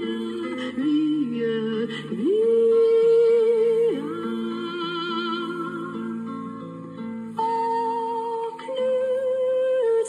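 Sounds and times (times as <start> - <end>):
soft acoustic guitar: 0.0 - 10.0.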